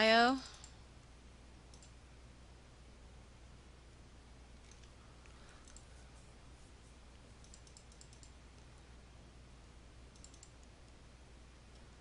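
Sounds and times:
computer mouse clicks: 0:01.7 - 0:02.0, 0:04.6 - 0:06.0, 0:07.4 - 0:08.7, 0:10.1 - 0:11.0.

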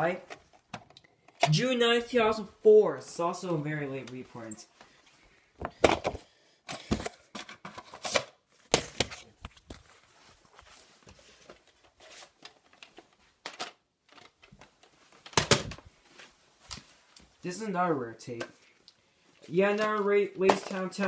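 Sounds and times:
rustling: 0:09.4 - 0:13.4, 0:14.1 - 0:17.4
plastic tape cases clacking: 0:12.4 - 0:15.8.

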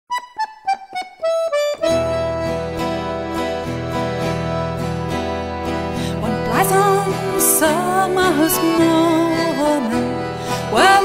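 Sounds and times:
piano accordion folk melody: 0:00.1 - 0:11.0.

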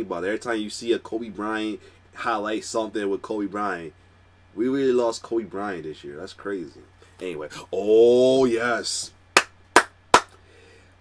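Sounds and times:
sharp hand claps: 0:09.4 - 0:10.4.

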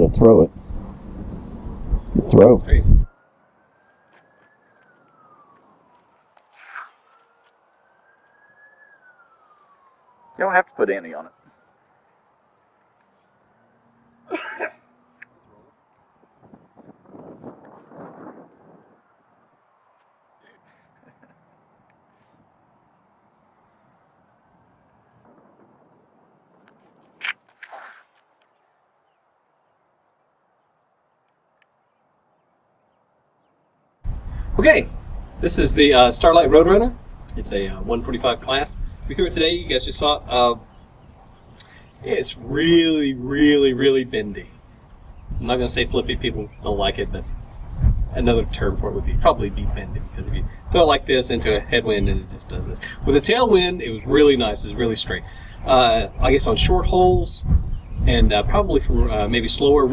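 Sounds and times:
distant siren wailing: 0:00.0 - 0:27.0, 0:34.0 - 0:59.9
faint outdoor ambience: 0:00.0 - 0:59.9.

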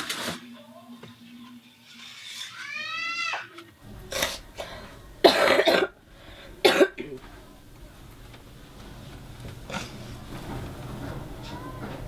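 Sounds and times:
person coughing: 0:05.2 - 0:06.0, 0:06.6 - 0:07.2.

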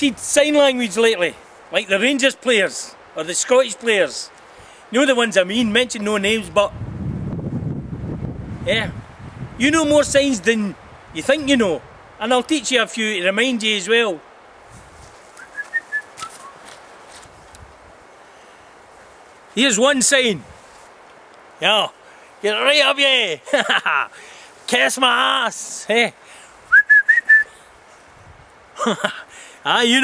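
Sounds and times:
short whistled notes: 0:15.4 - 0:16.6, 0:26.7 - 0:27.5.

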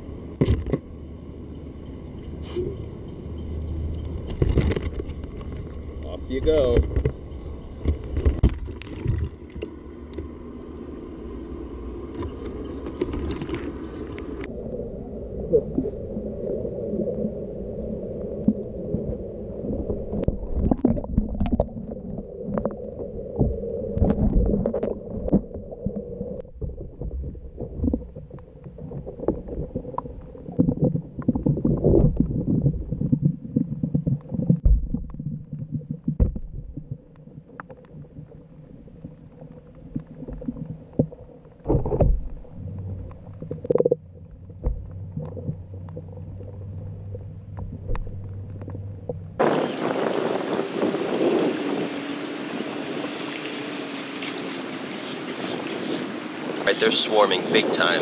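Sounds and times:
moving water: 0:00.0 - 0:58.0
muffled underwater rumbling: 0:00.0 - 0:58.0
wind on microphone: 0:49.4 - 0:58.0.

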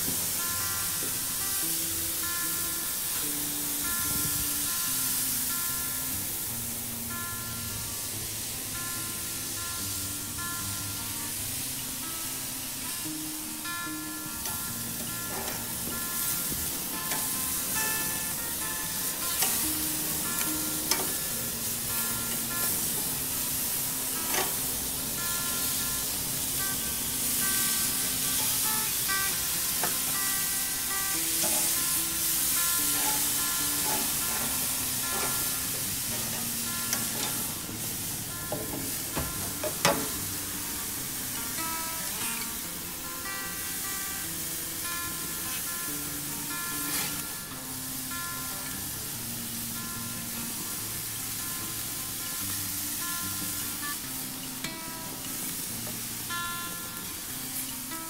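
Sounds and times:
background music: 0:00.0 - 0:58.0
meat sizzling on a grill: 0:00.0 - 0:58.0.

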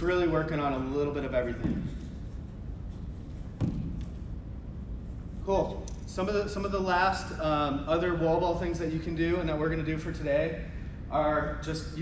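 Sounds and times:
low room hum: 0:00.0 - 0:12.0
ball thudding against wall: 0:01.6 - 0:02.2, 0:03.6 - 0:04.2.

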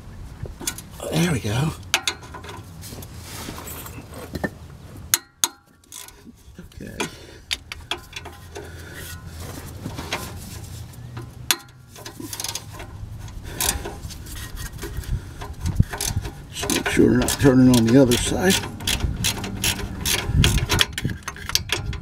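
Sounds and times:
tool clinking against bolts: 0:01.9 - 0:02.7, 0:06.8 - 0:09.3, 0:11.2 - 0:14.1, 0:14.8 - 0:22.0
ratchet wrench clicking: 0:14.6 - 0:22.0.

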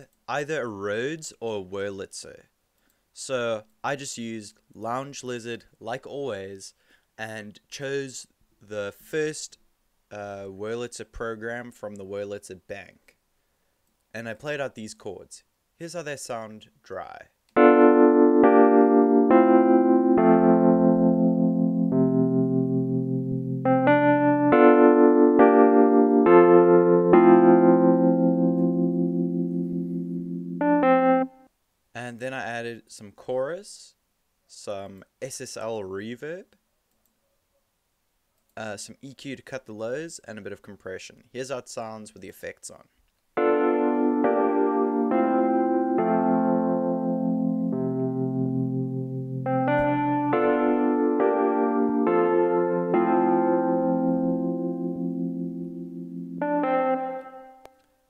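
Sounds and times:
electric piano chords: 0:17.6 - 0:31.5, 0:43.4 - 0:57.8.

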